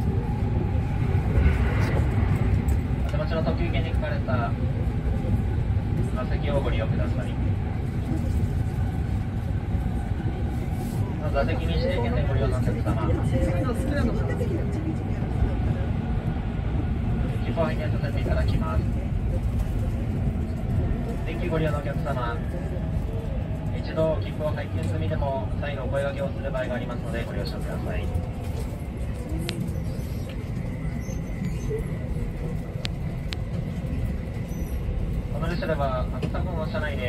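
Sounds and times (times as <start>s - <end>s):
train running rumble inside carriage: 0.0s - 37.0s.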